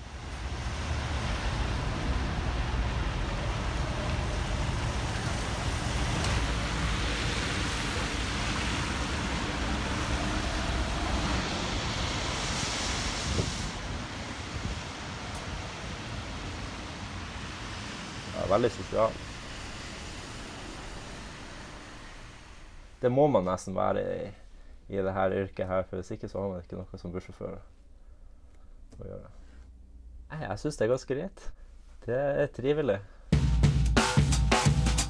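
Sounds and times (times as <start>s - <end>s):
bus engines idling: 0.0s - 23.0s
road noise on wet pavement: 0.0s - 23.1s
bright hiss: 3.5s - 23.2s.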